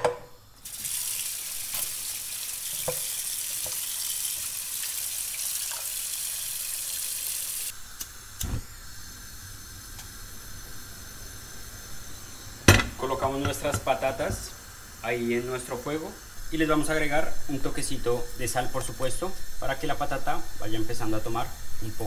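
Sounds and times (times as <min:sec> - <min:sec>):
tap water running into metal pot: 0:00.6 - 0:07.7.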